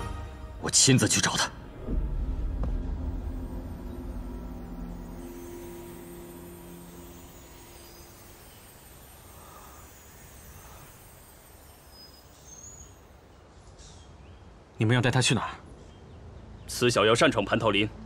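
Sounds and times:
held low soundtrack notes: 0.0s - 13.3s
background hiss: 0.0s - 16.7s.

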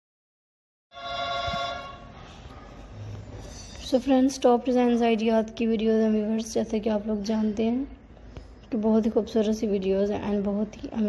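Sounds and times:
electronic ringing tone: 1.0s - 2.1s.

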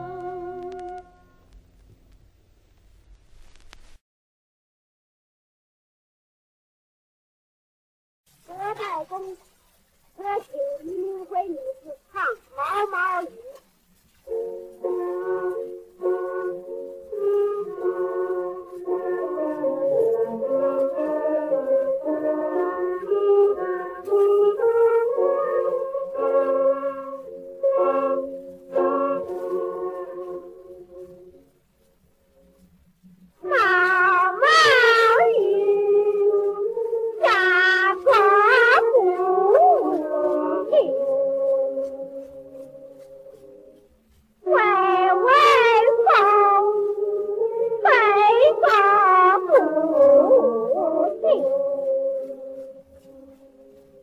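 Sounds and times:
sustained notes with overtones: 0.0s - 1.6s
person singing: 14.8s - 31.2s, 33.4s - 43.5s, 44.4s - 53.5s
high voice singing: 33.4s - 42.7s, 44.4s - 52.8s.

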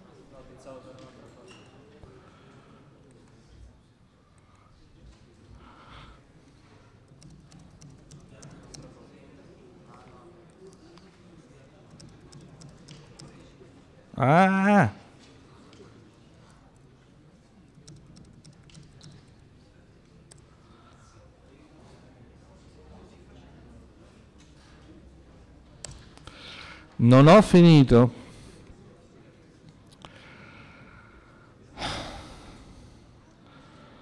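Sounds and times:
faint keyboard typing: 7.0s - 9.2s, 9.9s - 13.7s, 15.7s - 21.0s.

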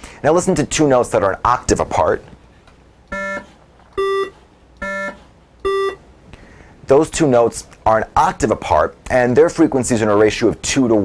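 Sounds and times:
buzzy electronic beeps: 3.1s - 6.0s.

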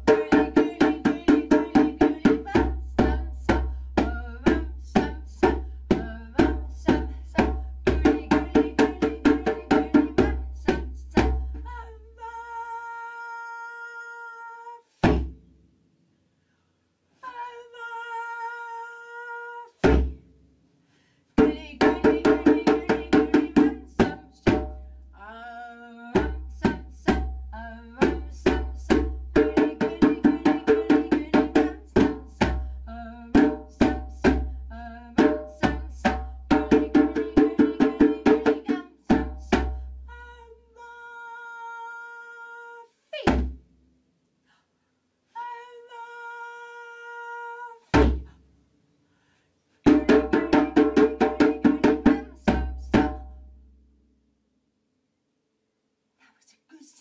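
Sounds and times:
djembe drumming: 0.0s - 11.6s, 21.4s - 24.7s, 28.0s - 32.6s, 33.3s - 34.4s, 35.2s - 39.8s, 48.0s - 48.3s, 49.9s - 53.3s.

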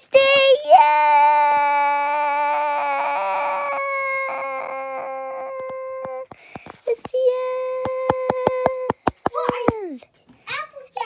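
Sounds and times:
girl holding a long high wail: 0.7s - 6.3s.

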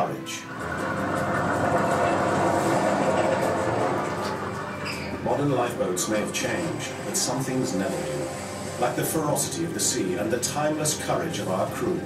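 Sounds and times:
boat rushing down slipway: 0.4s - 11.5s.

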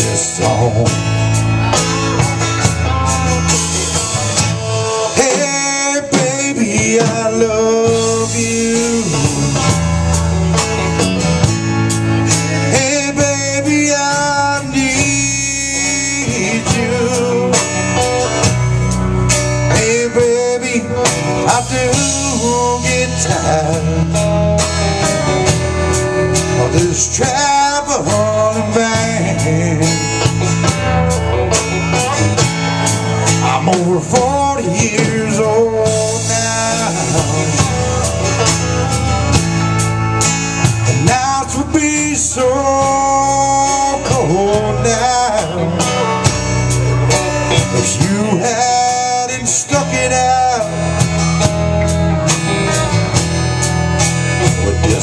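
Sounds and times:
bass: 0.0s - 55.0s
drum beat with cymbals: 0.0s - 55.0s
electric guitars: 0.0s - 55.0s.

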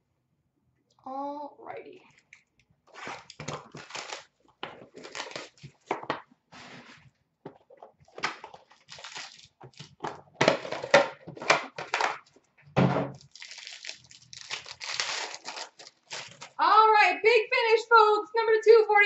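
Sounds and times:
plastic wrap crinkling and tearing: 2.9s - 6.0s, 8.1s - 10.0s, 13.2s - 16.6s.

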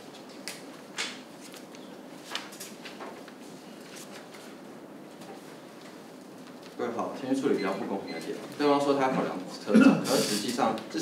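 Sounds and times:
man speaking: 6.8s - 11.0s.

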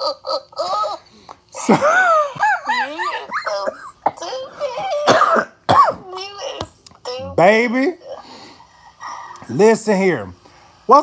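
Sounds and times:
man laughing loudly: 1.6s - 4.0s
man coughing: 4.9s - 6.0s.

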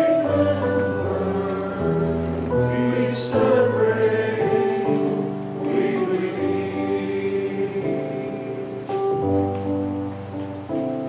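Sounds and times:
choir singing a hymn: 0.0s - 9.2s.

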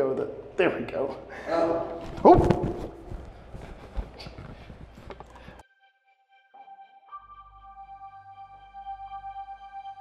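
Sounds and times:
faint knocks and scuffs: 2.0s - 5.6s.

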